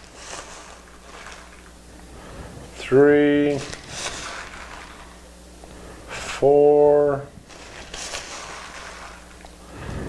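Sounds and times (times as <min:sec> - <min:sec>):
plastic bag rustling: 0:00.0 - 0:06.4, 0:07.3 - 0:10.0
faint steady hum: 0:00.0 - 0:10.0.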